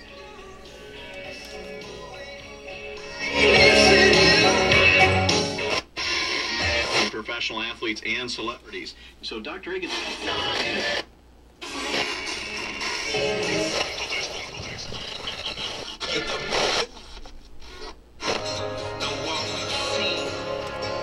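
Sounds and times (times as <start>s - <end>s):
radio music through speakers: 0.0s - 21.0s.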